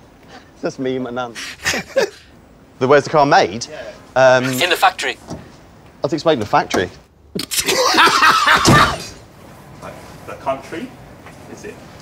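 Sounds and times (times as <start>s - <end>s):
person laughing loudly: 1.5s - 2.3s, 7.5s - 9.2s.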